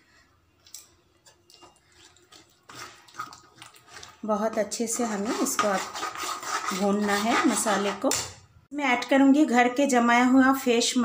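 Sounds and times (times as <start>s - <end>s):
metal spoon scraping metal pan: 1.5s - 8.3s.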